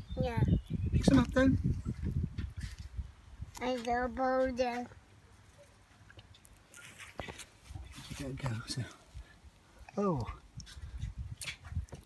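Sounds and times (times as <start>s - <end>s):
child's voice: 0.1s - 0.6s, 3.6s - 5.0s.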